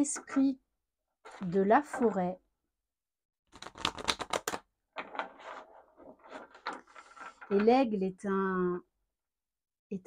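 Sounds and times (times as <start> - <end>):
cards being shuffled: 3.5 - 7.4.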